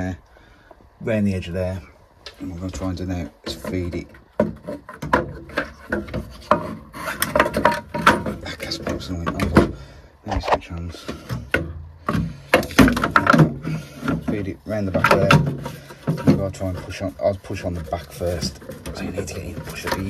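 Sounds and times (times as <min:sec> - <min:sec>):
plastic part knocking and scraping: 0:03.2 - 0:20.0.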